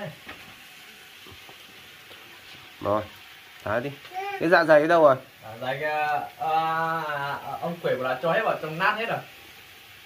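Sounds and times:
food sizzling in a pan: 0:00.0 - 0:10.0.

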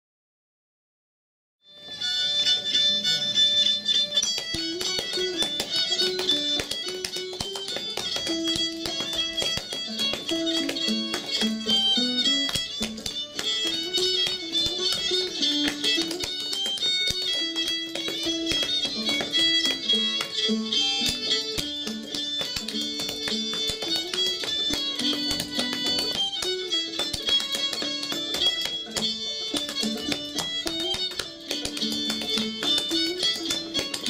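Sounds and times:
fiddle tune with plucked strings: 0:01.7 - 0:34.0
dancing shoes tapping wooden stage: 0:01.8 - 0:34.0.

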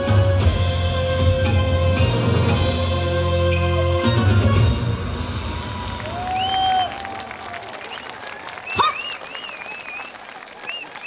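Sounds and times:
audience applauding: 0:03.7 - 0:11.0.

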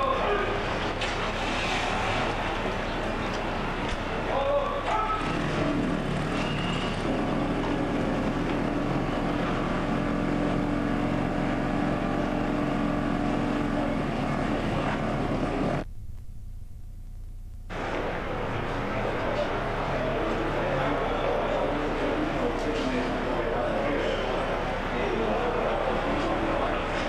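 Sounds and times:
vehicle engine running: 0:00.0 - 0:27.0
background noise: 0:15.5 - 0:27.0.

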